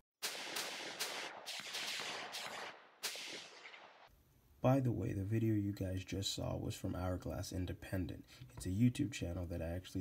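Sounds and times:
gunshots with echo: 0:00.2 - 0:04.1.

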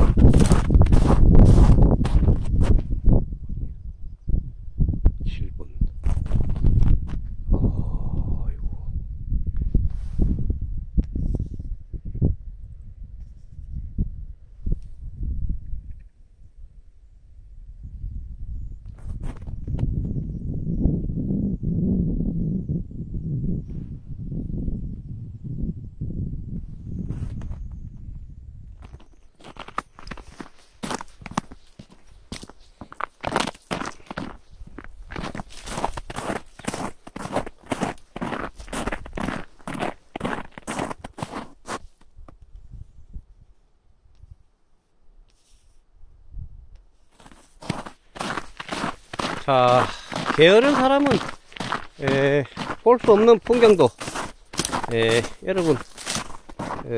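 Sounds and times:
footsteps crunching on ice: 0:00.0 - 0:02.9, 0:28.8 - 0:42.0, 0:47.1 - 0:56.9.

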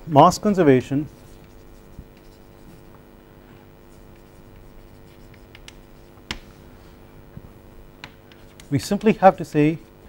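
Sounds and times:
low steady hum: 0:00.0 - 0:10.0
chalk scratching on chalkboard: 0:01.0 - 0:03.0, 0:03.8 - 0:06.4, 0:08.3 - 0:10.0
chalk tap: 0:04.1 - 0:06.5.

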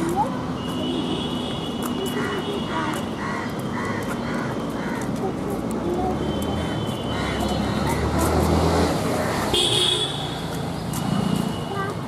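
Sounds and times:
traffic engine hum: 0:00.0 - 0:12.0
vehicle horn toot: 0:09.5 - 0:10.4.

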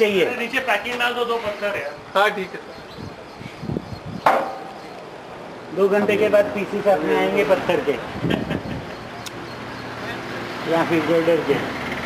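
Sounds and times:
sharp knock with short ring: 0:04.2 - 0:04.7.

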